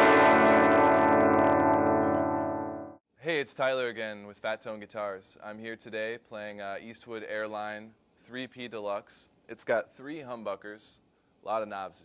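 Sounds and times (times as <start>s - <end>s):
overdriven electric guitar chord: 0.0s - 3.0s.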